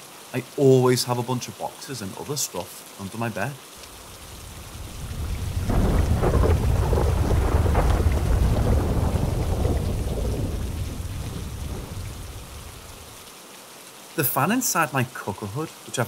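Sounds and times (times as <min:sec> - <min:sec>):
steady rain: 0:00.0 - 0:16.0
thunder rumbling: 0:03.9 - 0:13.2.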